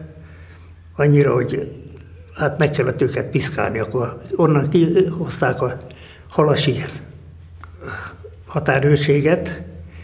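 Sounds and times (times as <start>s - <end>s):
faint low hum: 0.0s - 10.0s
man speaking: 1.0s - 9.8s.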